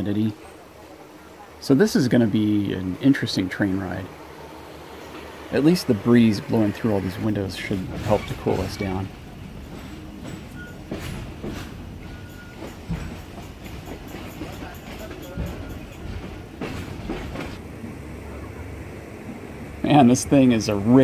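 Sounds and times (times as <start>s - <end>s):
train carriage rumbling on rails: 0.0s - 21.0s
knocks and clanks from train: 7.6s - 17.6s.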